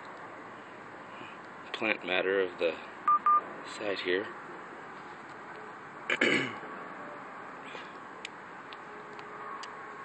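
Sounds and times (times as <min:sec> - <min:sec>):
person clearing throat: 0:06.1 - 0:06.6.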